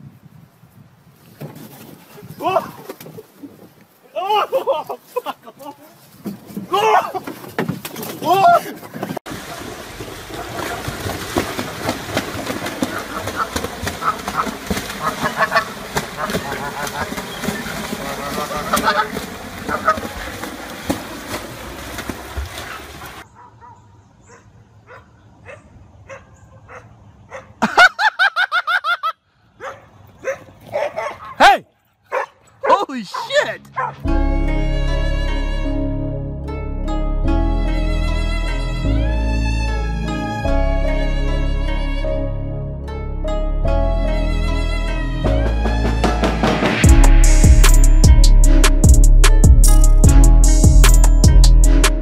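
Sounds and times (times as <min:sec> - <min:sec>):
water splashing: 0:06.6 - 0:23.3
dog barking and yelping: 0:23.4 - 0:27.6, 0:29.6 - 0:34.0
bowed string music: 0:33.6 - 0:52.0.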